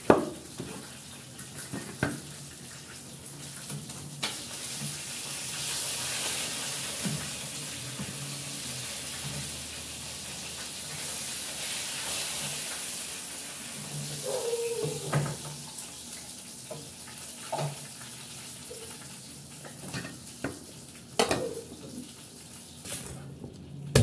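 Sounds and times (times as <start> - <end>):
tap running water: 0.0 - 23.2.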